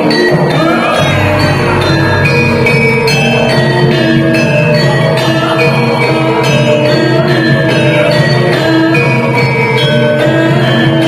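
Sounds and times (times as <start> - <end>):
gamelan metallophone melody: 0.0 - 11.0
low undertone: 0.7 - 6.4.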